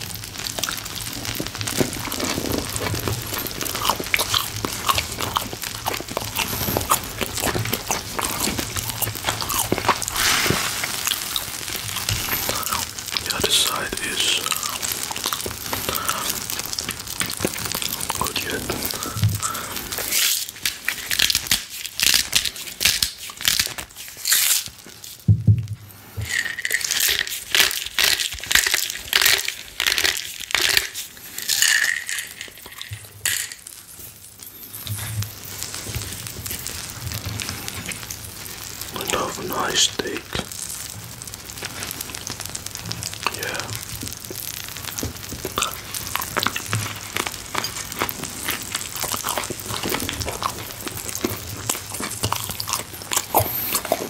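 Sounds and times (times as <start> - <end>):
chewing crusty bread: 0.0 - 25.3, 26.2 - 54.0
steak sizzling on grill: 0.0 - 54.0.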